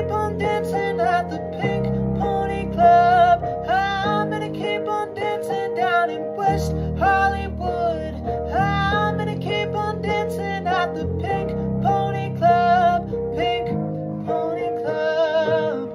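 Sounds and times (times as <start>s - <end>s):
instrumental backing: 0.0s - 15.9s
man singing pop song: 0.0s - 15.9s.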